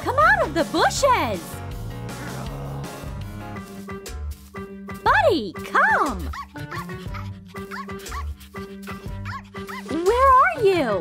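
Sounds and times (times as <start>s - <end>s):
upbeat background music: 0.0s - 11.0s
small dog yipping: 6.2s - 8.3s, 9.2s - 9.9s.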